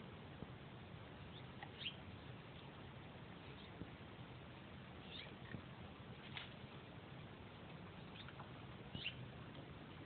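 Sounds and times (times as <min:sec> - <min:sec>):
steady background hiss: 0:00.0 - 0:10.0
faint high chirps: 0:08.0 - 0:09.2.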